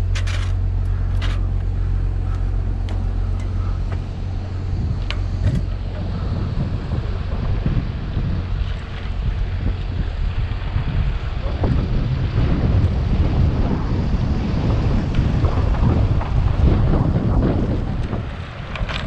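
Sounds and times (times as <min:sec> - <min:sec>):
bicycle tyre and road noise: 0:00.0 - 0:19.0
wind buffeting microphone: 0:00.0 - 0:19.0.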